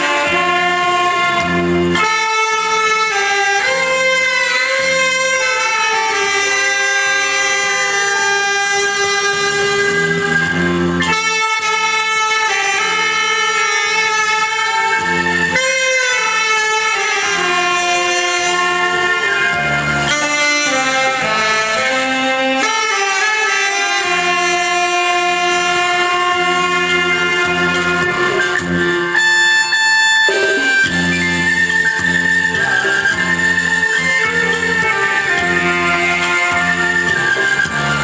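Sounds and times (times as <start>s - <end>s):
backing track from a loudspeaker: 0.0s - 38.0s
saxophone ensemble playing: 0.0s - 38.0s.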